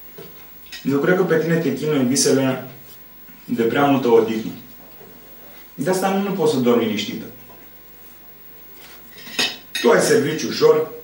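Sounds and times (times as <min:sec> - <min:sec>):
cutlery clinking on a plate: 0:09.2 - 0:09.9.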